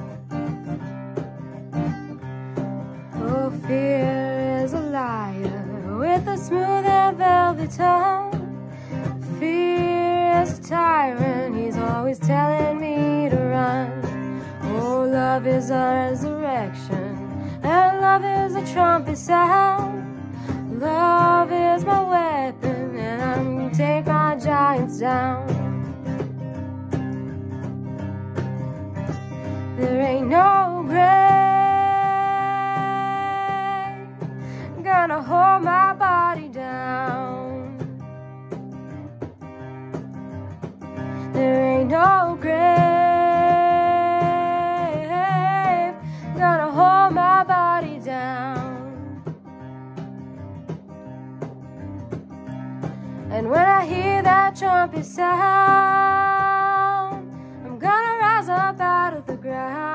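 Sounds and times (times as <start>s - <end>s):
acoustic guitar strumming: 0.0s - 59.9s
woman singing wordless phrases: 3.2s - 8.5s, 9.2s - 25.6s, 29.7s - 37.9s, 41.3s - 49.2s, 53.3s - 59.9s.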